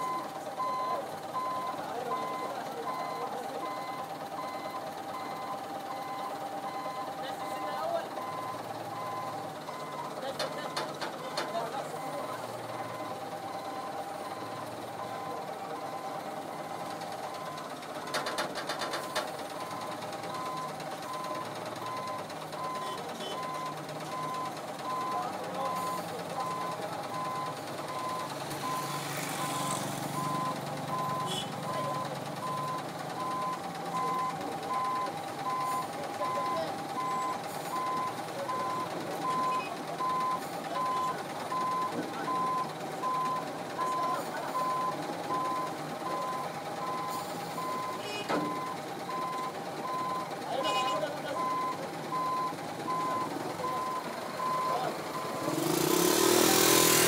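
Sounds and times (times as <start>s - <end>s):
reversing alarm beeping: 0.0s - 17.7s, 19.0s - 56.8s
diesel engine running: 0.0s - 57.0s
motorcycle passing: 55.4s - 57.0s.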